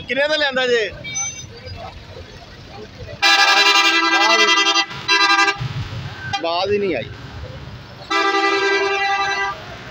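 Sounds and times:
vehicle horn blast: 3.2s - 5.6s, 8.1s - 9.6s.

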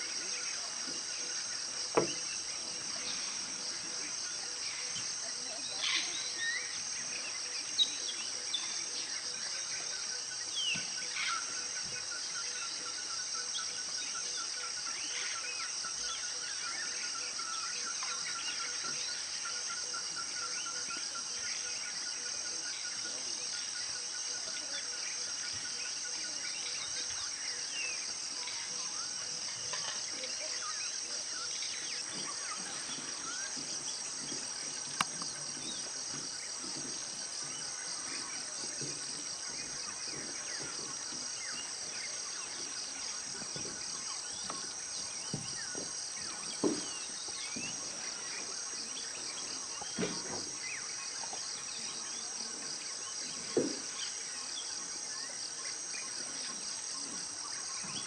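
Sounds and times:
insects chorus: 0.0s - 58.0s.

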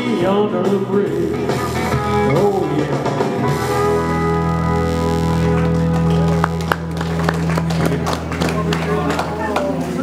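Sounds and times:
electric guitars: 0.0s - 10.0s
sustained organ-like tone: 2.0s - 8.2s.

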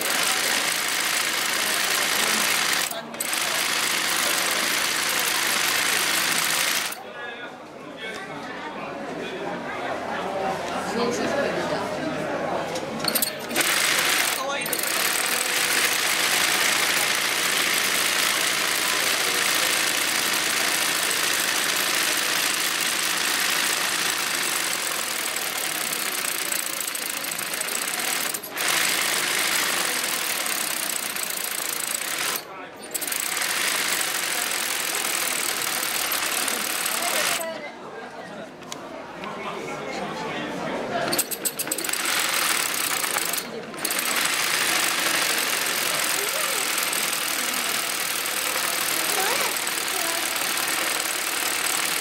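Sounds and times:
sewing machine running fast: 0.0s - 7.0s, 13.0s - 37.5s, 41.1s - 52.0s.

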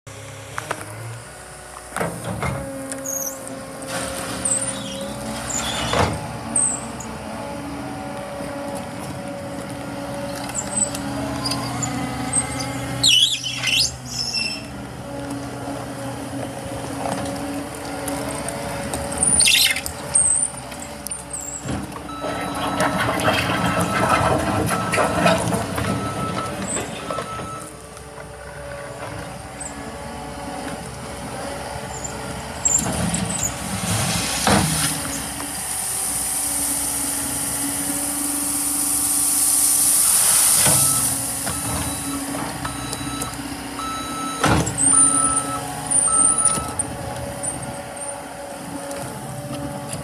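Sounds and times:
diesel engine droning: 0.1s - 50.0s
short high squeals: 3.0s - 7.0s, 10.3s - 14.7s, 19.2s - 20.5s.

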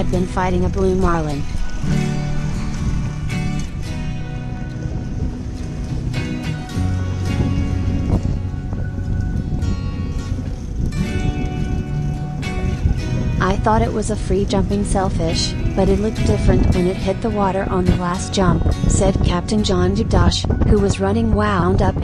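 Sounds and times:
background music with held chords: 0.0s - 22.0s.

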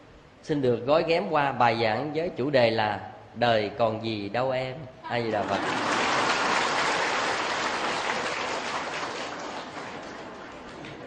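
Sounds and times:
large audience applauding: 5.4s - 11.0s.

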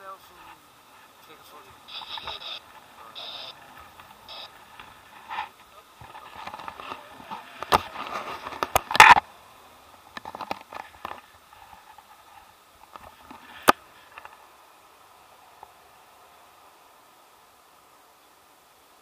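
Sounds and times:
camera handling scrapes: 1.9s - 2.6s.

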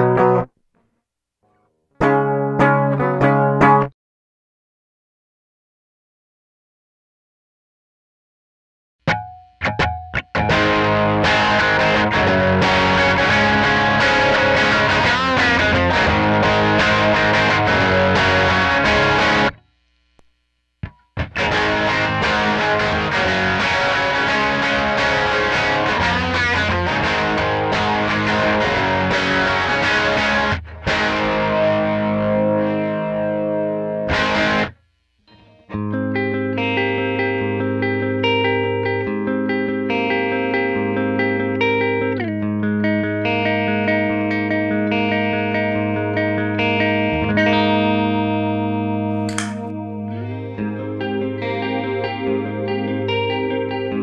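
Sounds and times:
chorused electric guitar: 0.0s - 0.5s, 2.0s - 3.9s, 9.1s - 19.6s, 21.2s - 34.7s, 35.3s - 54.0s.

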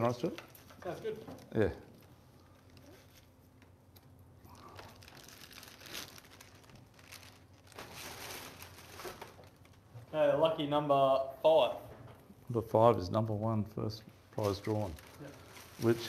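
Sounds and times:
faint steady hum: 0.0s - 16.0s
plastic bag crinkling: 4.5s - 9.9s, 14.4s - 16.0s
paper tickets rustling: 14.4s - 16.0s.

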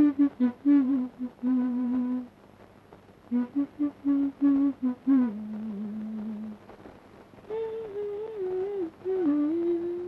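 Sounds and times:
woman humming a tune: 0.0s - 2.3s, 3.3s - 6.6s, 7.5s - 10.0s.

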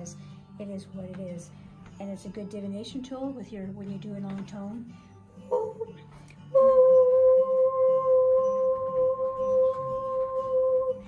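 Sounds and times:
woman singing long ooh tone: 5.5s - 11.0s.

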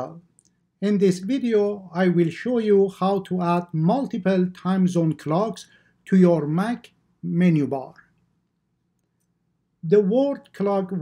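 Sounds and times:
person speaking: 0.0s - 8.2s, 9.8s - 11.0s.

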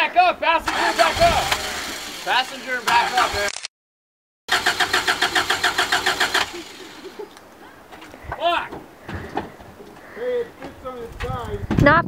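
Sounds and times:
starter motor cranking engine: 0.6s - 3.6s, 4.5s - 7.3s.

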